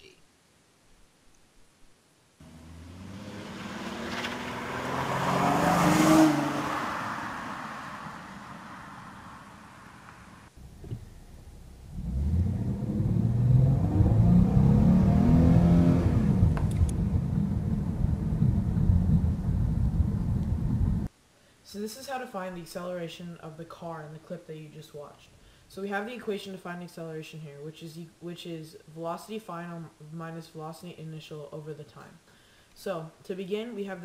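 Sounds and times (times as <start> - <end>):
car driving by: 2.4 - 21.1
car engine accelerating: 2.4 - 21.1.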